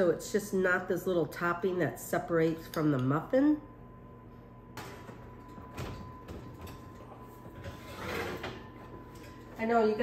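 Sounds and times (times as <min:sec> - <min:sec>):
oven rack scraping: 0:06.6 - 0:09.8.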